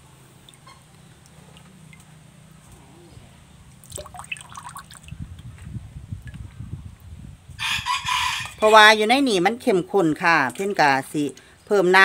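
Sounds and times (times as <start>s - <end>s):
thick liquid gurgling into bottle: 3.9s - 5.2s.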